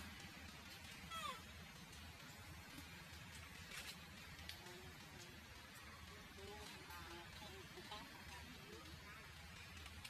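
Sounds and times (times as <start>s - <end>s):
baby monkey crying: 1.1s - 1.5s.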